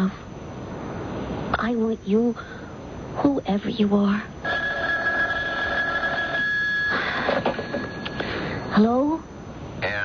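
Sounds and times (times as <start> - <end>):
telephone bell ringing: 4.4 - 8.8.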